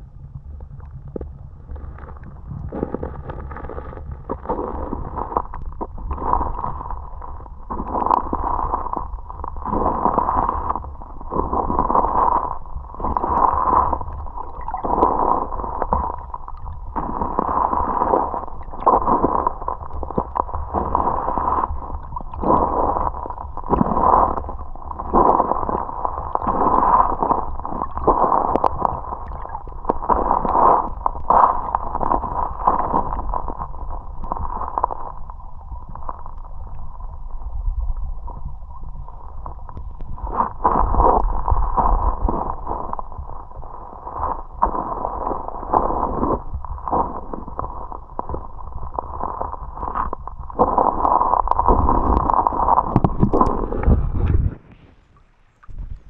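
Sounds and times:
muffled underwater water sloshing: 0.0 - 56.0.

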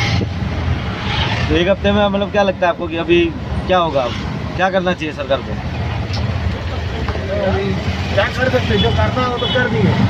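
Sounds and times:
auto-rickshaw engine rumble: 0.0 - 10.0
street noise: 0.0 - 10.0.

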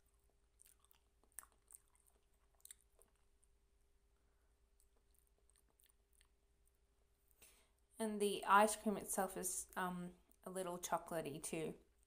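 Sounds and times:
chewing with crisp crunches: 0.0 - 3.6, 4.7 - 6.8.

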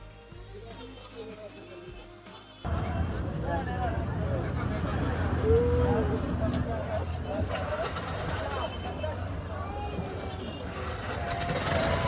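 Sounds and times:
indistinct voices: 0.7 - 12.0
auto-rickshaw engine running: 2.7 - 12.0.

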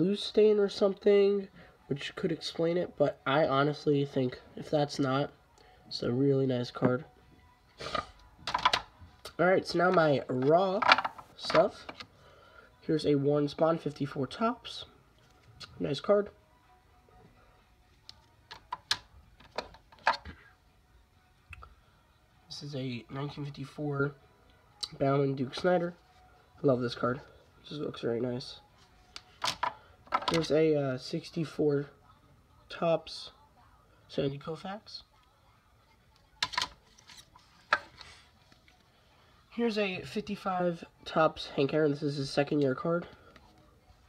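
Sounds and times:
plastic card holders clicking: 29.3 - 30.5.

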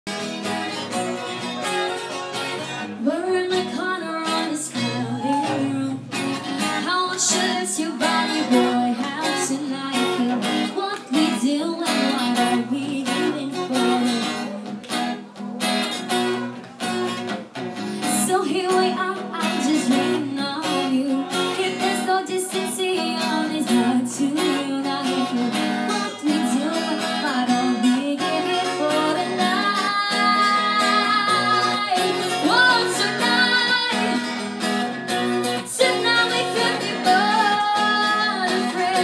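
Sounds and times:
acoustic guitar: 0.1 - 39.0
woman singing: 3.0 - 14.6, 18.0 - 39.0.

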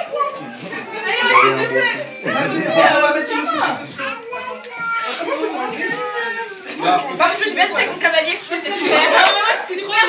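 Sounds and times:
people talking over one another: 0.0 - 5.8
children's voices: 0.0 - 10.0.

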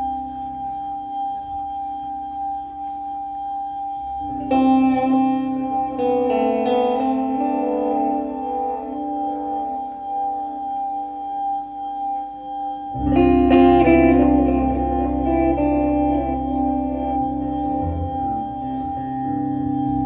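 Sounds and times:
plucked guitar chords: 0.0 - 20.0.

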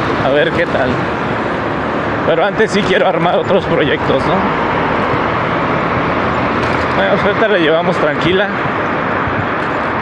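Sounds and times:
tyres on road: 0.0 - 10.0
wind on microphone: 3.4 - 7.3, 8.0 - 10.0.

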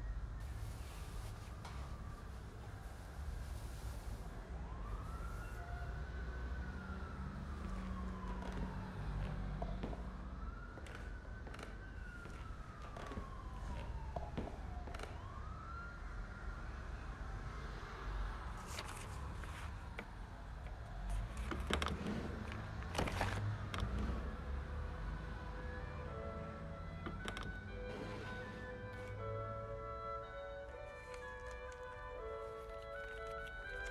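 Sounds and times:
siren wailing: 0.4 - 18.1, 19.1 - 33.9.

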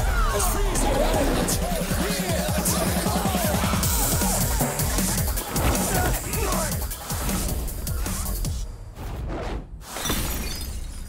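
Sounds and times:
glass bottles smashing: 10.0 - 11.0.

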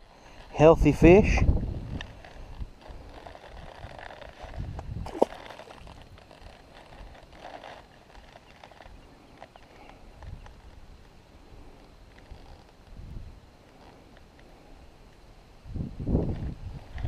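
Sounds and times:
microphone handling rustling: 1.2 - 8.9.

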